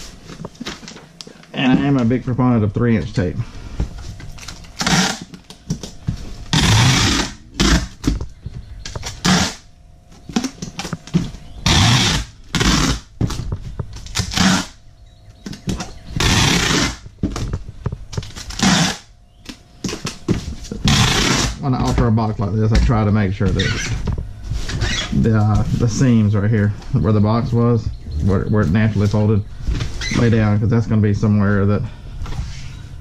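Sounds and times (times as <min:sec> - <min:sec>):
packing tape screeching off dispenser: 0:04.4 - 0:05.5, 0:06.5 - 0:08.1, 0:09.0 - 0:09.7, 0:11.6 - 0:13.1, 0:14.0 - 0:14.8, 0:15.8 - 0:17.0, 0:18.3 - 0:19.1, 0:20.8 - 0:21.6, 0:24.7 - 0:25.2
tape dispenser knocking on box: 0:04.8 - 0:05.9, 0:06.5 - 0:08.2, 0:08.9 - 0:09.6, 0:11.1 - 0:13.4, 0:14.0 - 0:14.8, 0:15.7 - 0:17.5, 0:18.1 - 0:19.0, 0:20.8 - 0:21.6.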